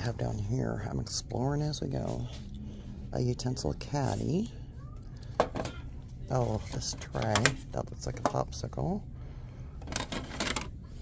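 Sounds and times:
low steady hum: 0:00.0 - 0:11.0
plastic tray and cup handling: 0:05.4 - 0:08.5, 0:09.8 - 0:10.8.

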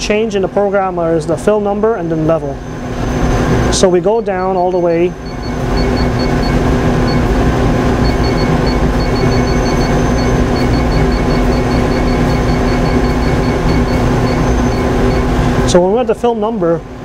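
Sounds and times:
steady machine hum: 0:00.0 - 0:17.0
short high keypad beeps: 0:03.2 - 0:07.3, 0:08.0 - 0:15.4.

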